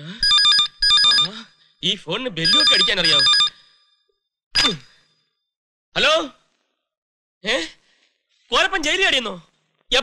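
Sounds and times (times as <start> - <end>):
telephone ringing electronic trill: 0.2 - 1.3, 2.4 - 3.9.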